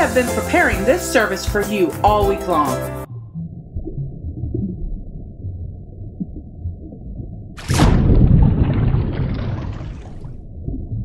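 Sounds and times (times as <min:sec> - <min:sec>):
muffled underwater rumble: 0:03.1 - 0:11.0.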